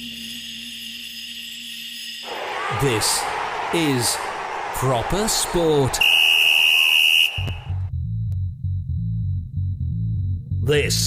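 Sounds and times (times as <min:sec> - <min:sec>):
low bass line music: 0:07.6 - 0:11.0.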